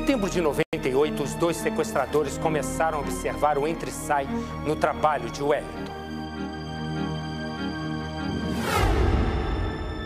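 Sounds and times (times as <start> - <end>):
dramatic music with held chords: 0.0 - 10.0.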